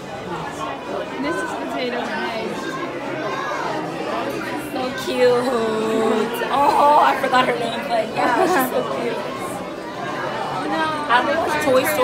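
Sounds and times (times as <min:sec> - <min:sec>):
people chattering indoors: 0:00.0 - 0:12.0.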